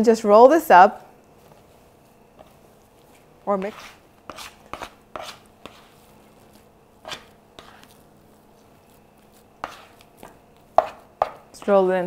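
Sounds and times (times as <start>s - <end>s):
bench scraper scraping wooden board: 3.6s - 5.9s, 7.0s - 7.8s, 9.6s - 9.9s.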